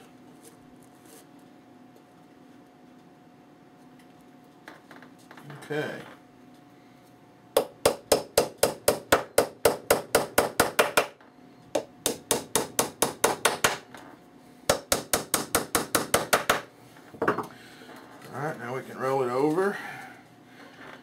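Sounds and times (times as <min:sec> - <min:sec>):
hammer tapping nails into wood: 0:07.6 - 0:11.2, 0:11.8 - 0:13.8, 0:14.7 - 0:16.7.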